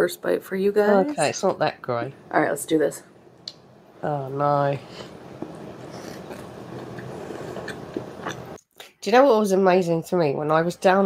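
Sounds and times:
person chewing a burger: 0:05.9 - 0:08.6
wet mouth clicks: 0:06.0 - 0:09.0.

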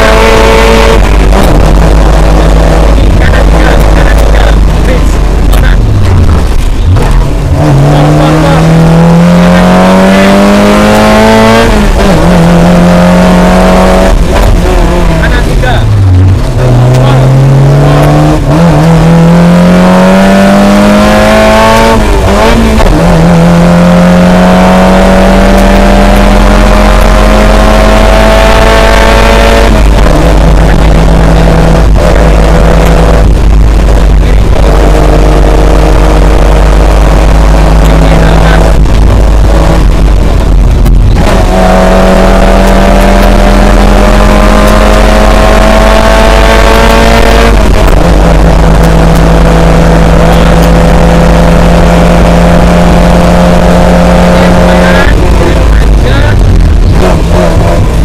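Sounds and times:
car engine revving through gears: 0:00.0 - 0:58.0.

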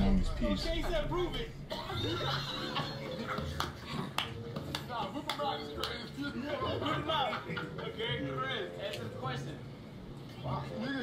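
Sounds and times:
men's voices: 0:00.0 - 0:01.9
men laughing: 0:01.7 - 0:04.1, 0:06.7 - 0:08.3.

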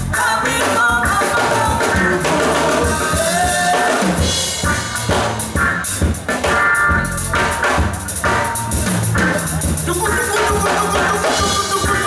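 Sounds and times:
man singing: 0:00.0 - 0:04.4, 0:09.4 - 0:12.0
drum kit playing: 0:00.0 - 0:12.0
electric guitar: 0:00.0 - 0:12.0.

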